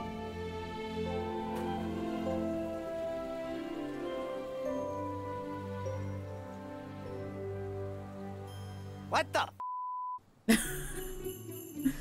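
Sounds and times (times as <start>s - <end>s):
festive holiday music with sleigh bells: 4.0s - 9.5s, 10.5s - 12.0s
cartoon voice speaking: 9.1s - 9.6s
censor bleep: 9.6s - 10.2s.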